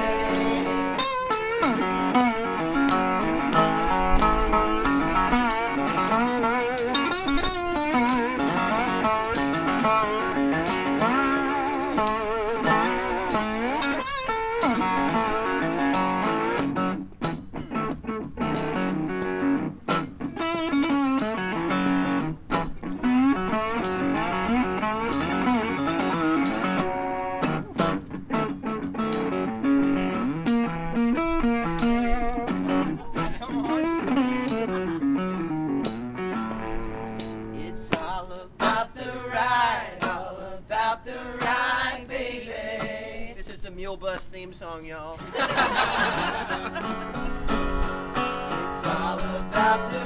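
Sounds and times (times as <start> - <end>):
resonator guitar with bending notes: 0.0 - 40.5, 45.2 - 50.0
tambourine hits: 0.3 - 2.1, 2.9 - 3.3, 5.4 - 6.0, 6.7 - 7.2, 8.0 - 10.0, 10.6 - 11.2, 12.0 - 14.0, 14.6 - 15.1, 15.8 - 16.5, 17.2 - 17.7, 18.5 - 19.0, 19.9 - 20.2, 21.2 - 21.7, 22.5 - 23.0, 23.8 - 24.4, 25.1 - 25.7, 26.4 - 26.8, 27.8 - 28.1, 29.1 - 29.5, 30.5 - 30.8, 31.8 - 32.1, 33.2 - 33.7, 34.5 - 34.8, 35.8 - 36.3, 37.2 - 37.6.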